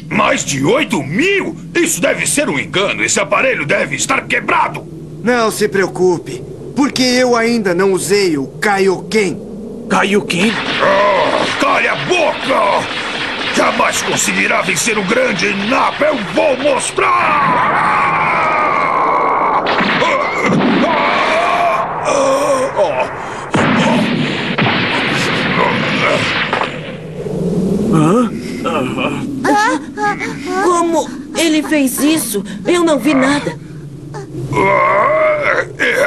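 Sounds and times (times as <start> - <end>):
cartoon character battle yell: 16.9 - 21.8
man groaning in pain: 17.2 - 23.2, 27.9 - 31.2, 34.5 - 36.0
man grunting: 27.9 - 29.3, 34.6 - 36.0.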